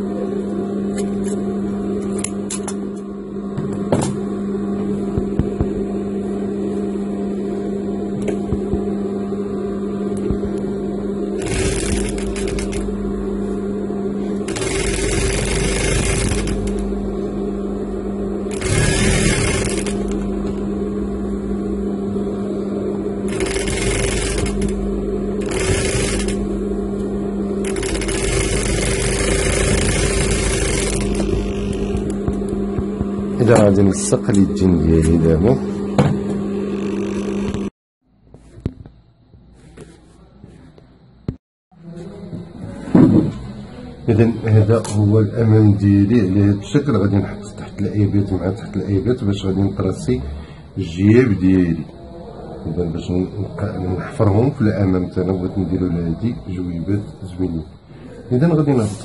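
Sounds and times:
sewing machine motor humming: 10.2 - 13.6, 14.2 - 17.4, 18.0 - 21.1, 22.9 - 33.8
sewing machine stitching: 11.4 - 12.9, 14.5 - 16.8, 18.5 - 20.2, 23.3 - 24.8, 25.4 - 26.4, 27.6 - 32.2.

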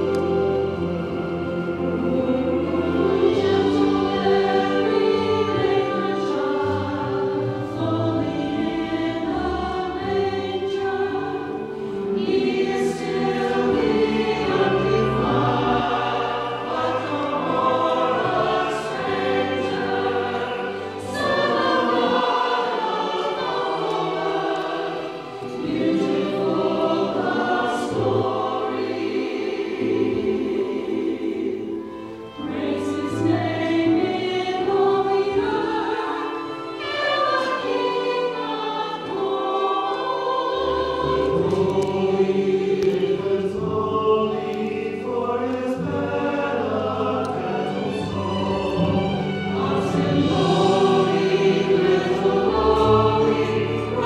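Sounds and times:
church choir singing: 0.0 - 54.0.

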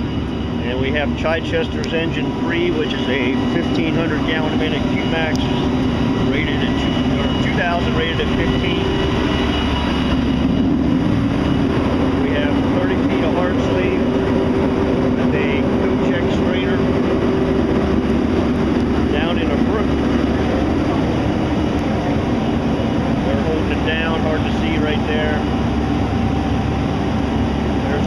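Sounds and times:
diesel engine humming: 0.0 - 28.0.

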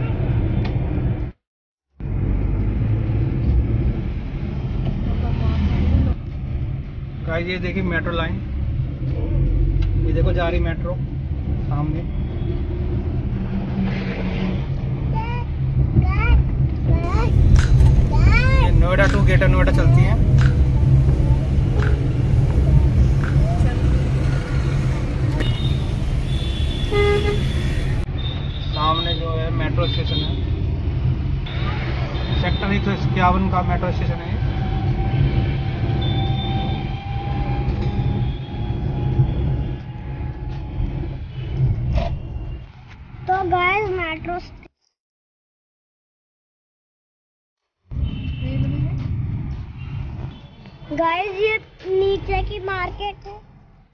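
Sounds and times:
vehicle engine and road rumble: 2.0 - 44.8, 47.9 - 53.8
voices: 17.0 - 28.0.

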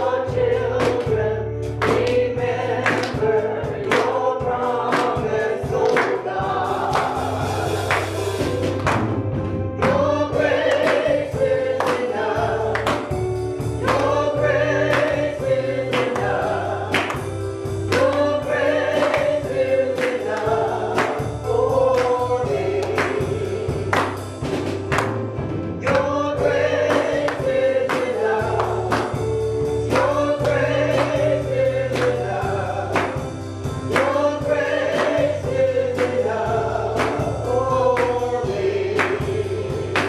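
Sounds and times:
bass line: 0.0 - 40.0
drum kit: 0.0 - 40.0
electric keyboard: 0.0 - 40.0
gospel singing: 0.0 - 40.0.

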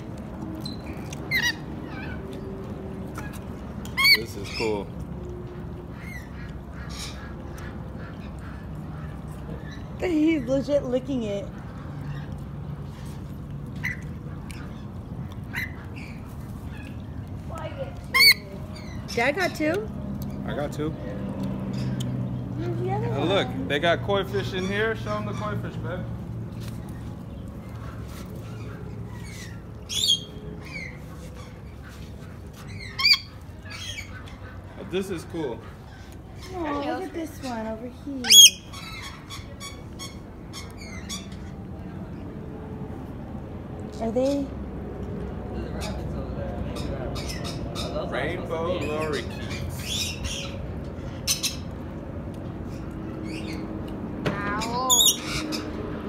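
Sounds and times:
birds chirping and chattering: 0.0 - 56.0
parrots screeching: 0.6 - 4.9, 5.5 - 10.0, 15.5 - 17.0, 18.1 - 19.4, 27.8 - 36.6, 38.2 - 41.6, 46.8 - 51.7, 52.7 - 53.7, 54.5 - 55.9.

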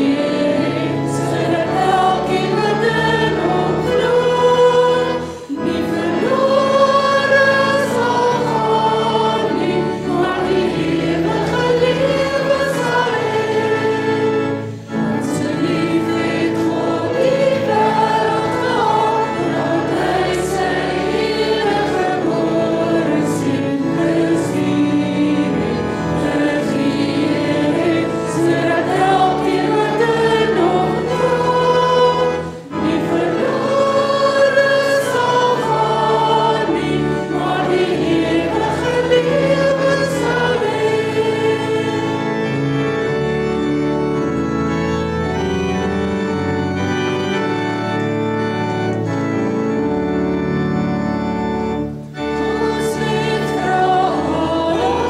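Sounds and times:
women singing in harmony: 0.0 - 42.6, 52.4 - 55.0.

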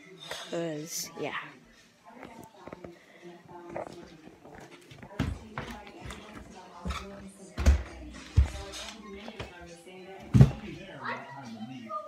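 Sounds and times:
faint background speech: 0.0 - 12.0.

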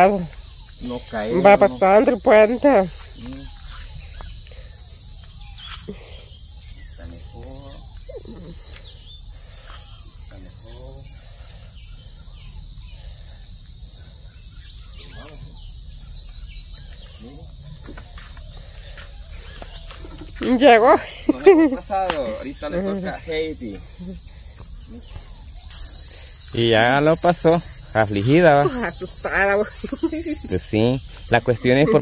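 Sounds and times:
high-pitched insect chorus: 0.0 - 32.0.

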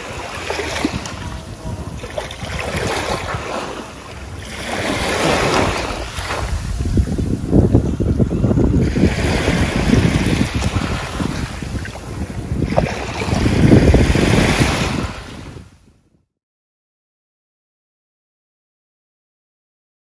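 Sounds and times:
small waves washing on shore: 0.0 - 15.8.

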